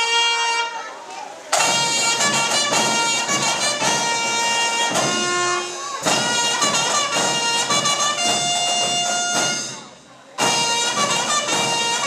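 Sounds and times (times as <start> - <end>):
trumpet playing long notes: 0.0 - 1.0, 1.6 - 12.0
band with drums: 0.0 - 12.0.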